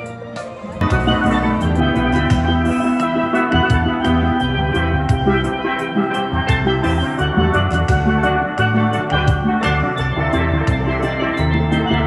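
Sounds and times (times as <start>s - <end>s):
steel pan band playing: 0.0s - 12.0s.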